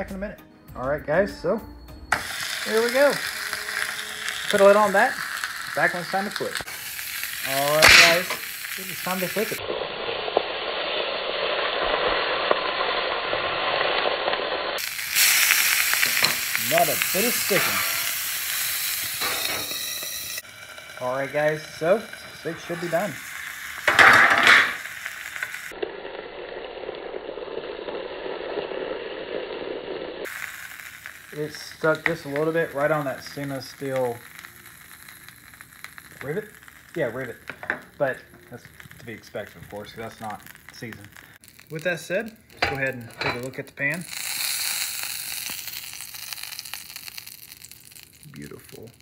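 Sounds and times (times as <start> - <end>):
lid lifting hiss: 2.1 - 14.2, 14.8 - 25.7, 30.2 - 38.1
steak sizzling in a skillet: 2.1 - 49.0.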